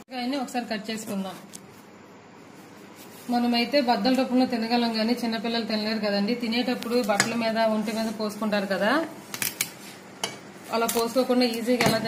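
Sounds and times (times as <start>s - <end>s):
person speaking: 3.1s - 9.2s.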